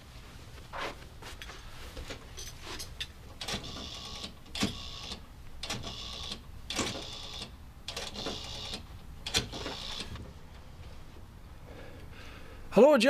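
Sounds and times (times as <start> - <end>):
telephone dial whirring: 3.4 - 10.2.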